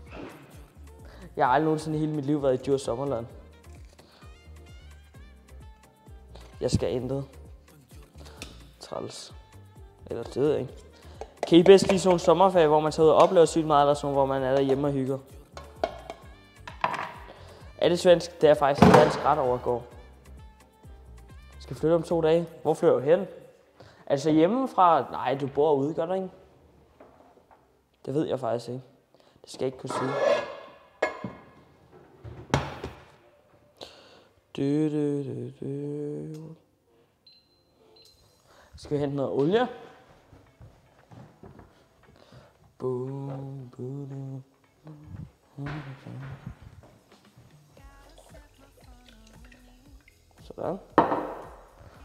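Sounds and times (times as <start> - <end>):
faint footsteps walking away: 38.8 - 48.4.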